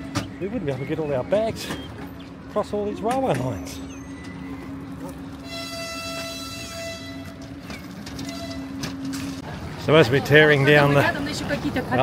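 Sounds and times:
hum of standing trains: 0:00.0 - 0:12.0
train horn: 0:05.4 - 0:07.5, 0:08.2 - 0:08.9
luggage trolley wheels clicking: 0:07.0 - 0:09.5.

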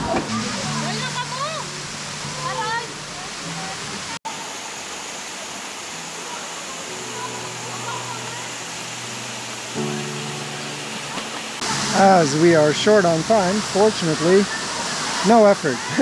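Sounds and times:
waterfall rushing: 0:00.0 - 0:16.0.

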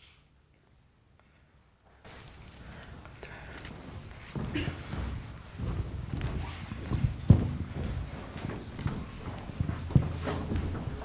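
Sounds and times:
dull low thumps: 0:04.4 - 0:11.0.

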